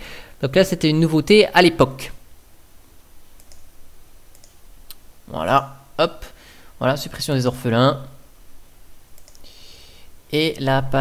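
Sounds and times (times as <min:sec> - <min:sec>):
faint room hiss: 0:00.0 - 0:11.0
computer mouse clicking: 0:03.4 - 0:03.7, 0:04.3 - 0:05.0, 0:09.1 - 0:09.5.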